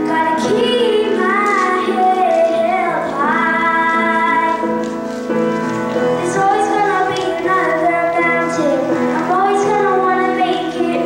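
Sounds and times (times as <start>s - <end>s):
boy singing a ballad: 0.0s - 4.9s, 6.2s - 11.0s
held accompaniment chords: 0.0s - 11.0s.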